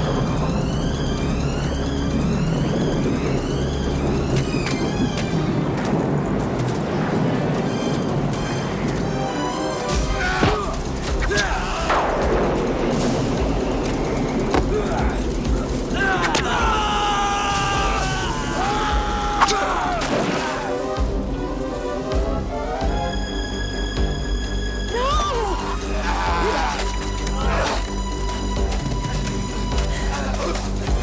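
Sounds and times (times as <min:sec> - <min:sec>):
dramatic film score: 0:00.0 - 0:31.0
fight hits and thuds: 0:10.3 - 0:11.5
shouted cries: 0:15.9 - 0:20.7, 0:24.9 - 0:27.8.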